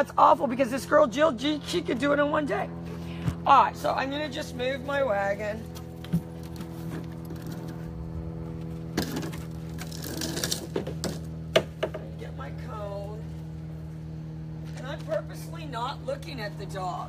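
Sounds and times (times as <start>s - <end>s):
steady hum: 0.0s - 17.0s.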